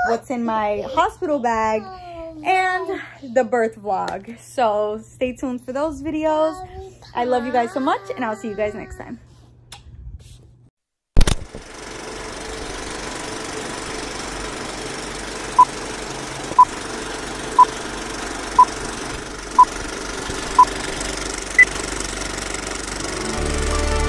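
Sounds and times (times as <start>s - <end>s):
film projector whirring and clattering: 11.2s - 23.4s
music: 23.0s - 24.0s.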